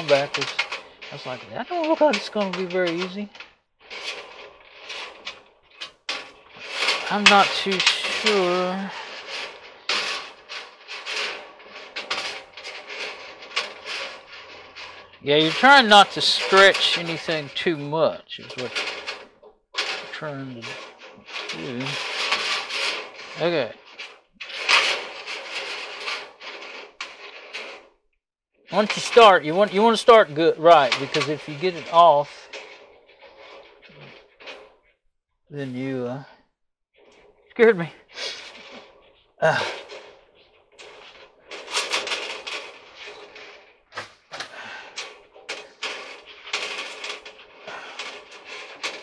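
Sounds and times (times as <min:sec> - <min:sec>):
metal coil scraping and rattling: 0:00.0 - 0:28.0, 0:28.6 - 0:34.9, 0:37.0 - 0:49.0.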